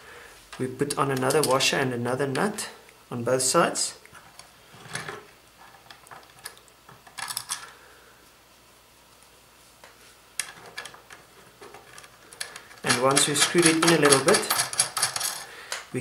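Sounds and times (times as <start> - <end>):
metal washers and nuts clinking: 10.4 - 15.9.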